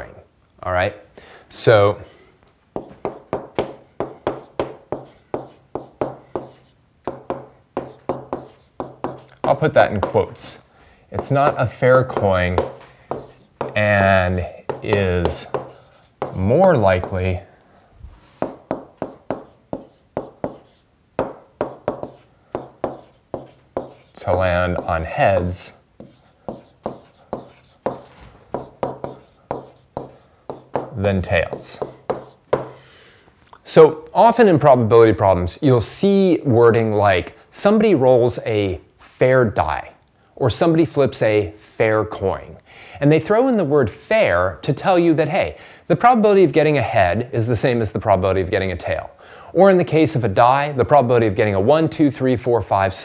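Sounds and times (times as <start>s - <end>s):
faint steady hum: 0.0s - 35.8s
stylus tapping on screen: 2.8s - 10.2s, 11.2s - 13.9s, 14.7s - 17.2s, 18.4s - 32.8s.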